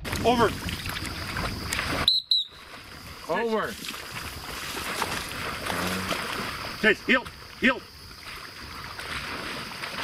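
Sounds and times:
dog splashing through water: 0.1s - 10.0s
high whistle blasts: 2.0s - 2.7s.

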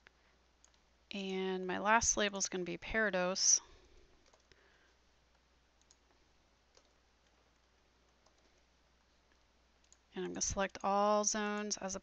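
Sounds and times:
keyboard and mouse clicks: 0.6s - 0.8s, 4.2s - 4.6s, 5.3s - 8.6s, 9.3s - 10.9s.

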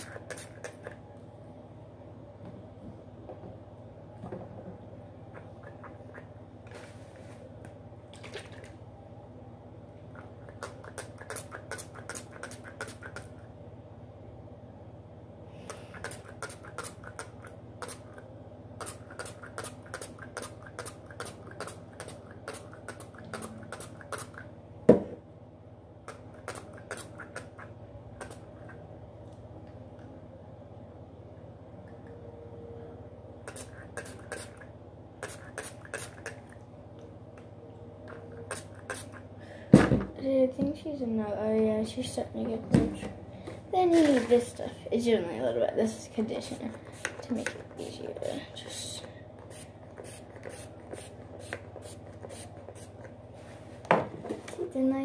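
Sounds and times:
spray bottle spritzing: 49.5s - 53.0s.

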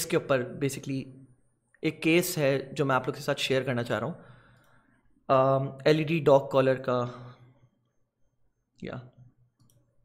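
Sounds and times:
faint computer mouse clicks: 9.6s - 9.9s.

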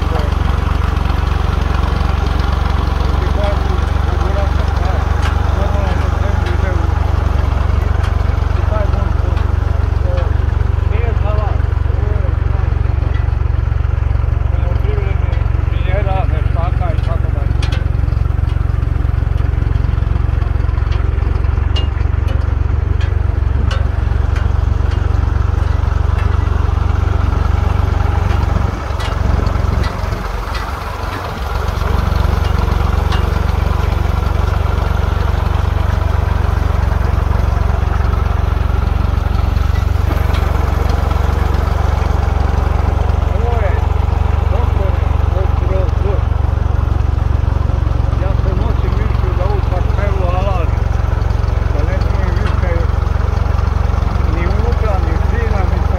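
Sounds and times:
vehicle engine rumbling: 0.0s - 55.9s.

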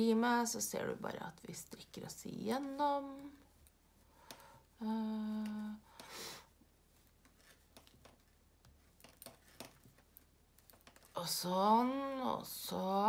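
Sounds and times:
knitting needles clicking: 7.4s - 11.3s.

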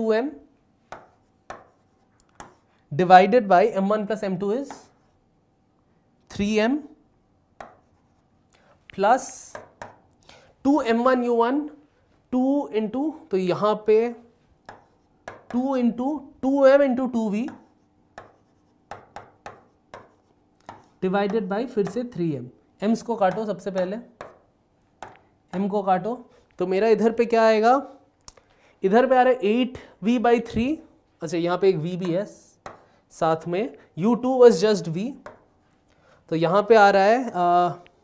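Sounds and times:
marker pen tapping on board: 0.9s - 2.6s, 4.6s - 5.0s, 7.6s - 8.0s, 9.4s - 10.0s, 14.6s - 15.6s, 17.4s - 22.1s, 23.3s - 25.7s, 32.0s - 32.9s, 35.2s - 35.5s.

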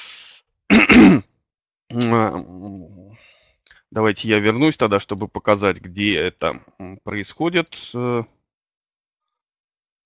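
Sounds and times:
breath into microphone: 0.0s - 0.5s
man clearing his throat: 0.7s - 1.4s.

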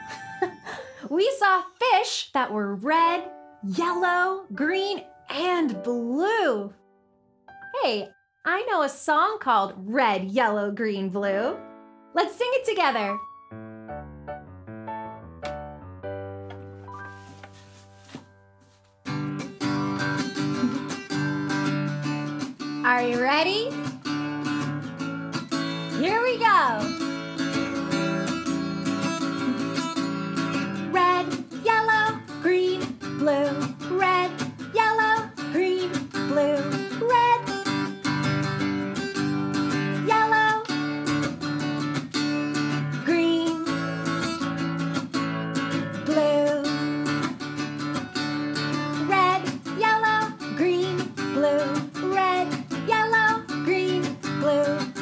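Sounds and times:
woman singing: 2.4s - 6.7s, 30.8s - 37.7s, 40.0s - 40.8s, 43.0s - 44.2s, 45.9s - 46.9s, 48.9s - 55.0s
acoustic guitar strummed: 19.0s - 55.0s.

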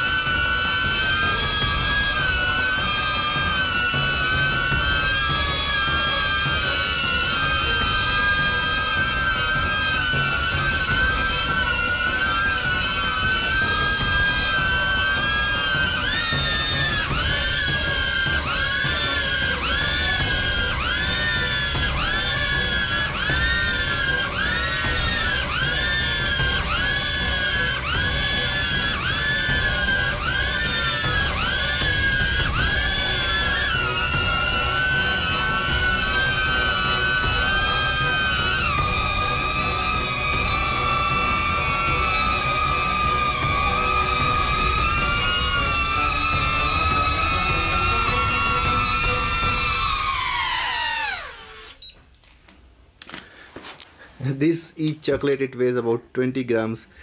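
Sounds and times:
drone propellers whining: 0.0s - 51.9s.

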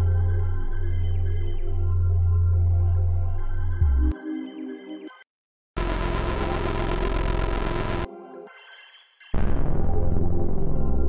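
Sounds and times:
heavy synthesizer bass note: 5.8s - 8.1s.

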